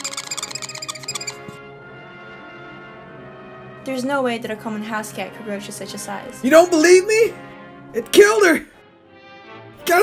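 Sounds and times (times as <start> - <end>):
marker squeaking on whiteboard: 0.0 - 1.6
background music: 0.0 - 10.0.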